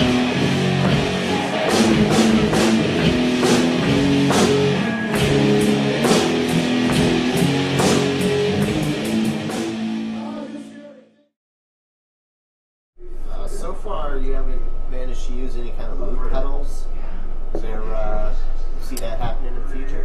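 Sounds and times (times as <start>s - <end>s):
drum kit with cymbal crashes: 0.0s - 10.6s
distorted electric guitar chords: 0.0s - 11.2s.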